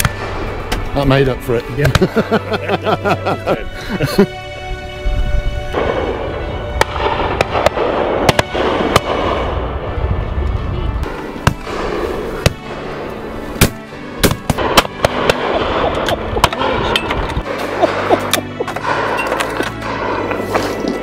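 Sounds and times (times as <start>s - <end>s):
background music: 0.0s - 21.0s
shotgun shots: 6.8s - 9.5s, 13.6s - 19.1s.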